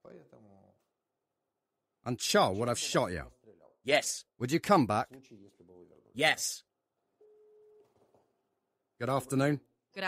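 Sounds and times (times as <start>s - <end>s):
phone ringback beep: 7.2s - 8.0s.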